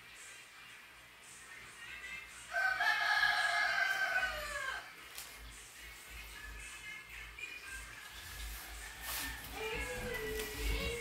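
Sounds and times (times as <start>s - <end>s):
rooster crowing: 2.5s - 5.0s.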